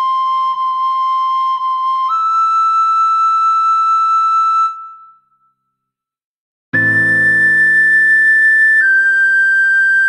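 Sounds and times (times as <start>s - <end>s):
recorder holding high note: 6.8s - 8.8s.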